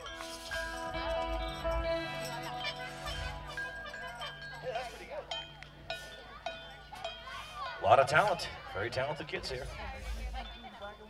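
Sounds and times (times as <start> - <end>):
metal percussion clinks: 0.0 - 8.6
children's voices: 6.0 - 7.8.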